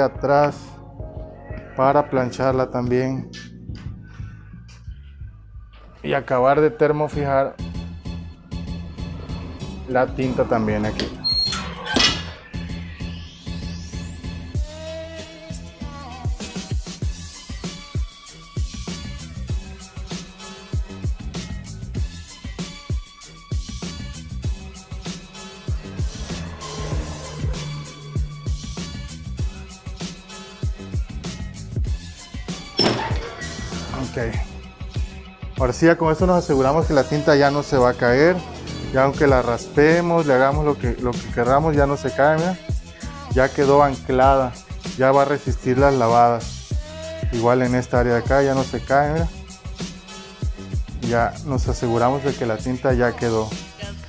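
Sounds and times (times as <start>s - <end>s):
music with deep bass beat: 15.9s - 32.2s
heat press thunk with metallic ring: 32.8s - 33.3s.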